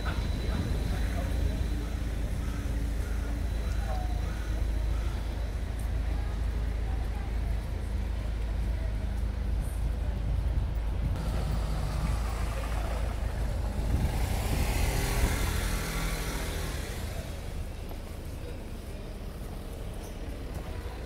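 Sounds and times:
car driving past: 0:11.2 - 0:17.6.

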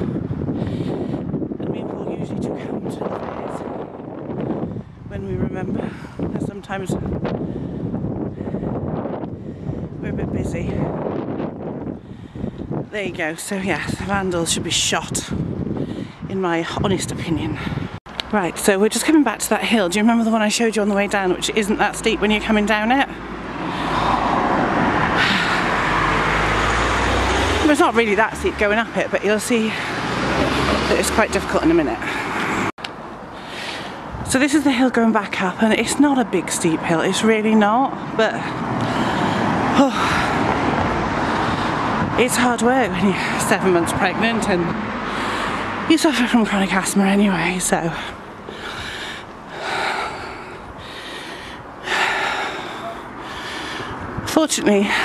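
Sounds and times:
woman breathing heavily: 0:00.0 - 0:01.6, 0:04.3 - 0:05.1, 0:05.7 - 0:06.4, 0:07.2 - 0:10.0, 0:11.8 - 0:12.9, 0:15.4 - 0:16.3, 0:17.5 - 0:18.0, 0:23.2 - 0:27.3, 0:29.6 - 0:30.7, 0:32.0 - 0:34.2, 0:38.0 - 0:42.2, 0:44.8 - 0:45.9, 0:47.6 - 0:55.0
car approaching: 0:21.2 - 0:34.3, 0:37.8 - 0:55.0.

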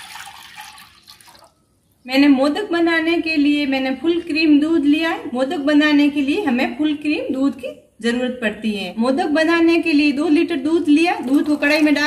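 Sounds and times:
milk splashing into water: 0:00.0 - 0:01.6.

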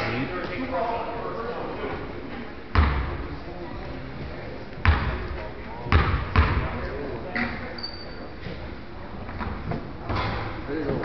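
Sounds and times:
crowd chatter: 0:00.0 - 0:11.0
basketball bouncing on hardwood floor: 0:05.9 - 0:06.6.

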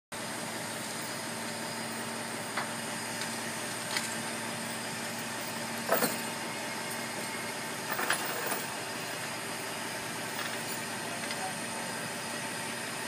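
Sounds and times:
crane engine droning: 0:00.2 - 0:13.0.

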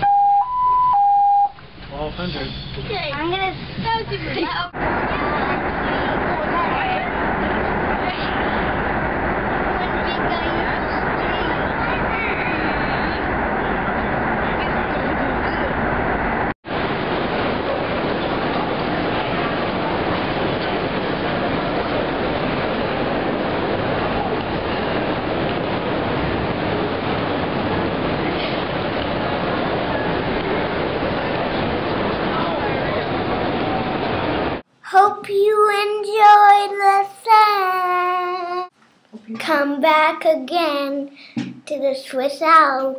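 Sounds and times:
train rumbling inside carriage: 0:01.7 - 0:34.7
girl singing: 0:34.8 - 0:38.7, 0:39.4 - 0:42.9.

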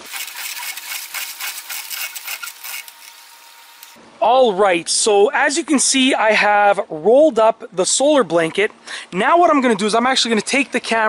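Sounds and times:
reel cranking clicks and rubbing: 0:00.0 - 0:03.2.

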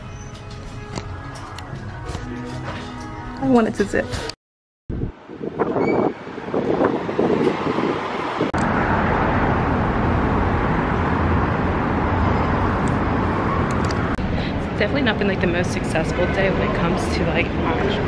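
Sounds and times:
city street traffic: 0:00.0 - 0:18.0.

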